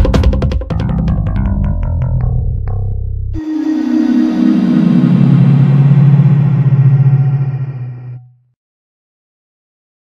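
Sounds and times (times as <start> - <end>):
low synthesizer tone: 1.4 - 8.6
hissing wash of sound: 3.4 - 8.1.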